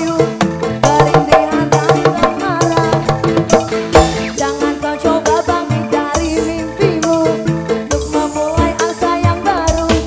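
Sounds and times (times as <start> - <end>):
keyboard melody: 0.0 - 10.0
live band music: 0.0 - 10.0
hand drums beating: 0.8 - 4.5.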